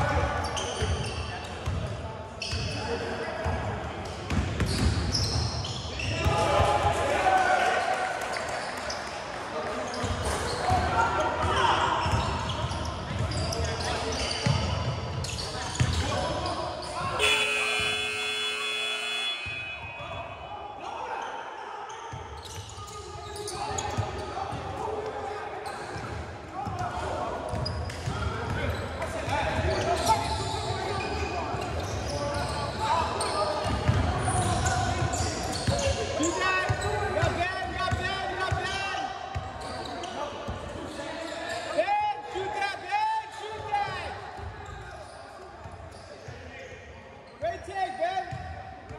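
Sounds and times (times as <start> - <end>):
players' feet on court: 17.1 - 19.6.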